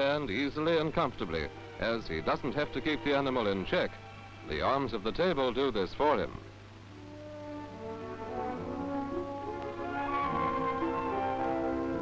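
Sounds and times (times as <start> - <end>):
background film music: 0.0 - 12.0.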